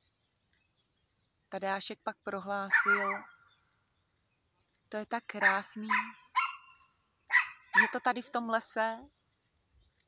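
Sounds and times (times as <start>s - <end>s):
dog barking high-pitched: 2.7s - 3.3s, 5.4s - 8.0s.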